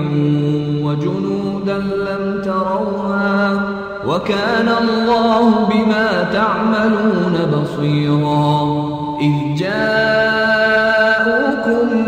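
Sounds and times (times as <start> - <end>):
person chanting melodic recitation: 0.0 - 12.0.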